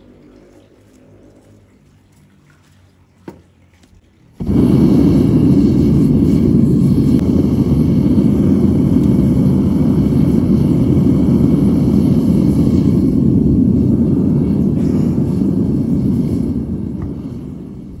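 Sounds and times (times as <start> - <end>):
gas burner roaring: 4.2 - 18.0.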